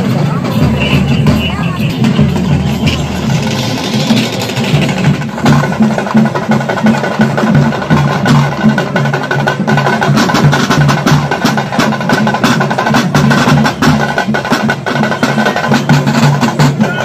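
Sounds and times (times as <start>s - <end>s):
steady high tone: 0.0s - 5.0s
drums beaten in steady rhythm: 0.0s - 17.0s.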